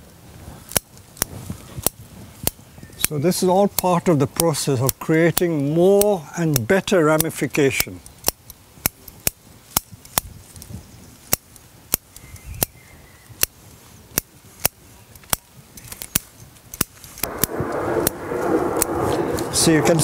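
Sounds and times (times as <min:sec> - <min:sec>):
scissors snipping twigs: 0:03.7 - 0:17.3
rushing noise: 0:17.2 - 0:20.0.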